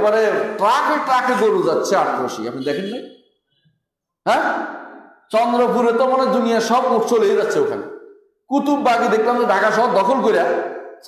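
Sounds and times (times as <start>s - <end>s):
man talking: 0.0s - 3.0s, 4.3s - 7.8s, 8.5s - 10.6s.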